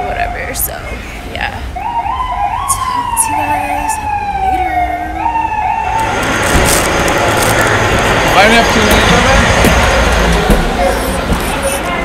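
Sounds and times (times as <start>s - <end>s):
siren wailing: 1.5s - 10.4s.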